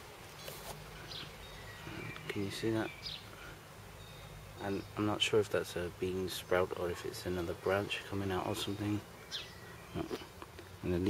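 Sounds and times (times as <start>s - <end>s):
brief rustle: 0.4s - 0.8s.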